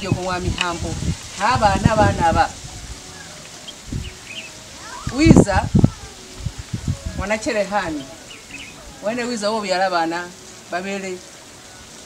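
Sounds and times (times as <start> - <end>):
faint bird chirps: 7.9 - 9.1.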